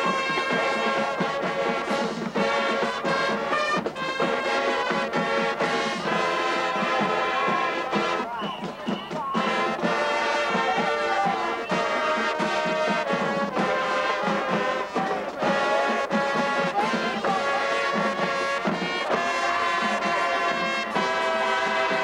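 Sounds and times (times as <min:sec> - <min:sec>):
brass section sustained chords: 0:00.0 - 0:08.3, 0:09.4 - 0:22.0
marching drums beat: 0:00.0 - 0:22.0.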